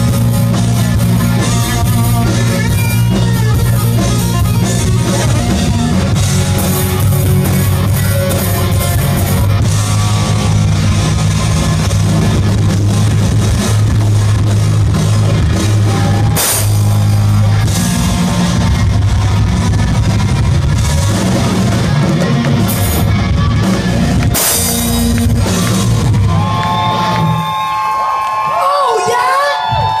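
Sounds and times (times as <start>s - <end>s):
drum kit: 0.0s - 28.0s
bass guitar: 0.0s - 28.4s
electric guitars: 0.0s - 28.4s
live rock band: 0.0s - 30.0s
audience yelling and whooping: 0.3s - 12.3s, 15.1s - 30.0s.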